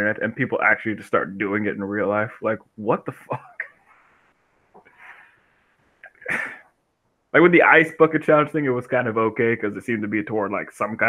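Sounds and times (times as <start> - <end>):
man laughing breathily: 6.1 - 6.6.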